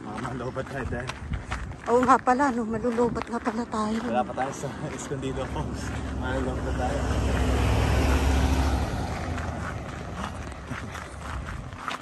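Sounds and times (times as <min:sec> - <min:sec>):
footsteps on dirt: 0:00.0 - 0:12.0
car driving past: 0:04.1 - 0:11.7.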